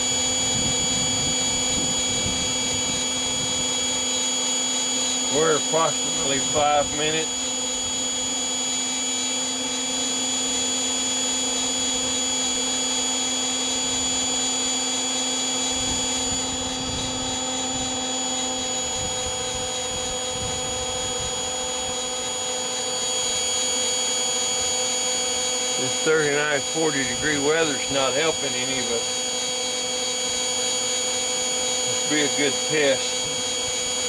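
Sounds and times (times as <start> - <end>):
electric blower motor whine: 0.0 - 34.0.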